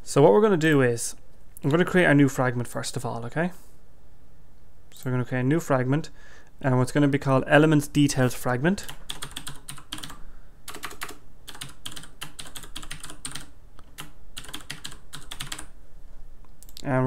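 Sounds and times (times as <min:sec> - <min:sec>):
typing on computer keyboard: 0:08.8 - 0:15.7.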